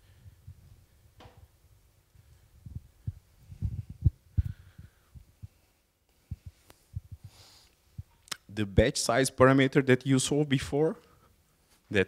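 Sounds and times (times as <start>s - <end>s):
microphone handling thumps: 2.6s - 5.6s, 6.2s - 7.4s.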